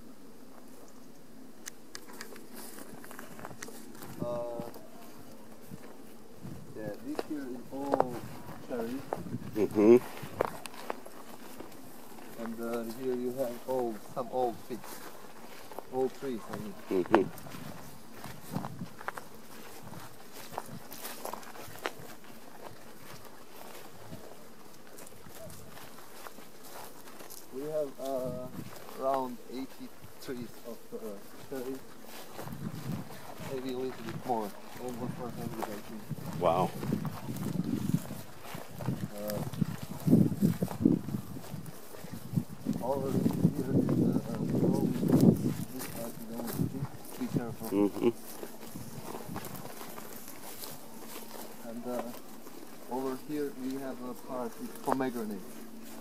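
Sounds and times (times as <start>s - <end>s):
footsteps through grass: 0.0s - 56.0s
steady low hum: 0.0s - 56.0s
person speaking: 6.7s - 10.2s, 15.8s - 17.3s, 42.8s - 48.3s, 51.4s - 56.0s.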